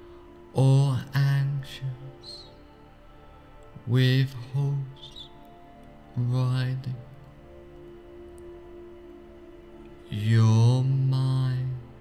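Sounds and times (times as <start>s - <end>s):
soft background music: 0.0s - 12.0s
man chanting low tone: 0.5s - 2.7s, 3.8s - 5.4s, 6.1s - 7.2s, 10.0s - 12.0s.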